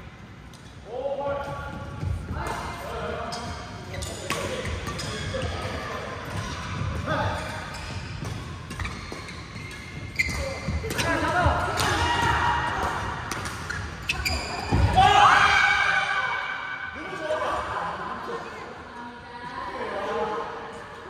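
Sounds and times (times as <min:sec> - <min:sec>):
players' voices: 0:00.8 - 0:08.6, 0:10.1 - 0:21.0.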